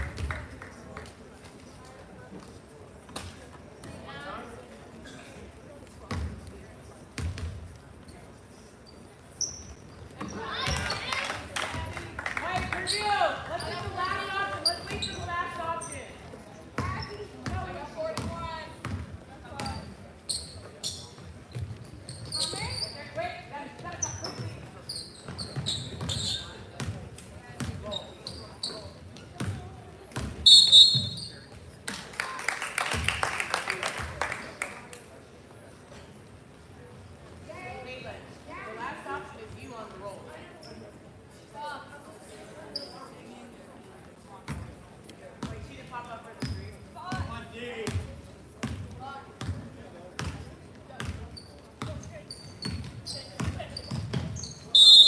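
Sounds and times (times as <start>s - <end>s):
sneakers squeaking: 5.9s - 11.8s, 12.5s - 31.8s, 39.4s - 41.0s, 42.6s - 43.4s, 46.4s - 55.0s
referee's whistle: 30.4s - 31.3s, 54.7s - 55.0s.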